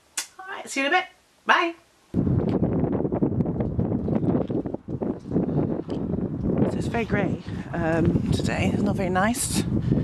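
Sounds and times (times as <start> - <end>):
wind buffeting microphone: 2.1 - 10.0.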